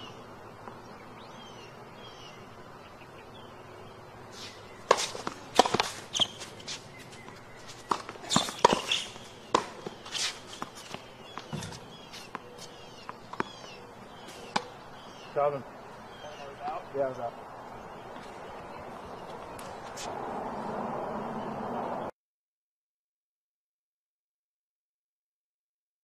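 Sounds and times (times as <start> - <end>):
small birds chirping: 0.0 - 20.1
racquets striking tennis ball: 4.4 - 15.2
tennis ball bouncing: 4.5 - 15.2.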